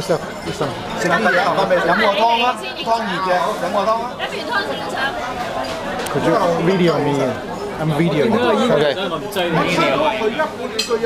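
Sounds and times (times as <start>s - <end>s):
overlapping conversation: 0.0s - 11.0s.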